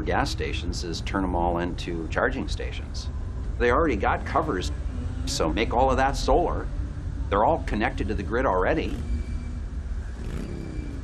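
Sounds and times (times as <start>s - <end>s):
car engine rumbling: 0.0s - 11.0s.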